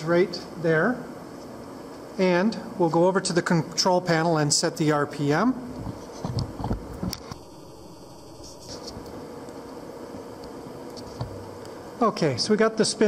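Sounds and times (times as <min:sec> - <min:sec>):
machine shop hum: 0:00.0 - 0:13.0.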